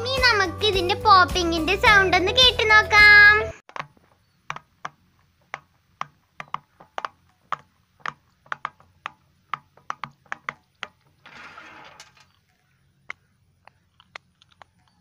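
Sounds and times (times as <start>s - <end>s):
rustling: 3.7s - 15.0s.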